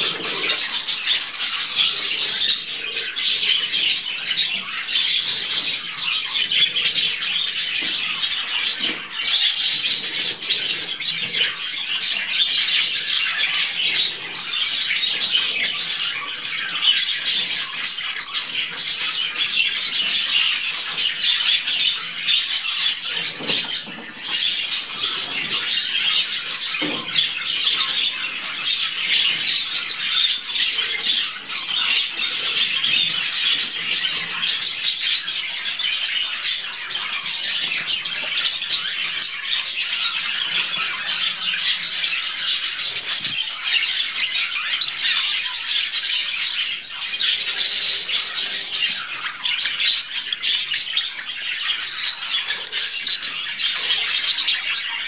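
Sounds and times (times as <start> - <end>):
budgerigars chirping: 0.0 - 55.0.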